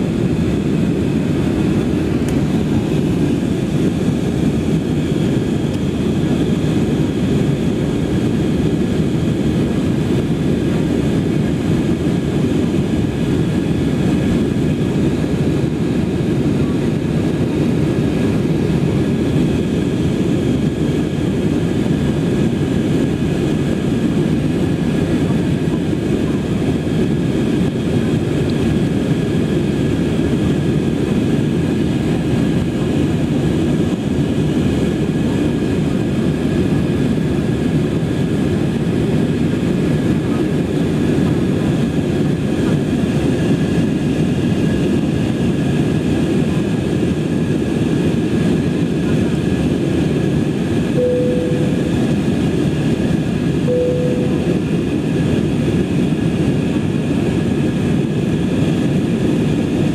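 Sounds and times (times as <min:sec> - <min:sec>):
airliner cabin engine rumble: 0:00.0 - 0:59.9
faint high engine whine: 0:00.0 - 0:59.9.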